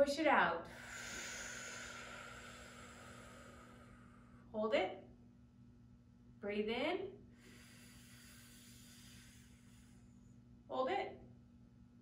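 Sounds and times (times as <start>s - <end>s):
low electrical hum: 0.0s - 12.0s
slow in-breath: 0.6s - 4.5s, 7.3s - 10.4s.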